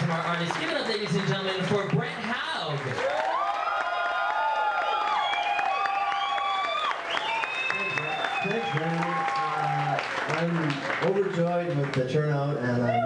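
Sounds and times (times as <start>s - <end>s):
audience applauding and cheering: 0.0s - 13.0s
shrill whistles: 5.0s - 9.4s.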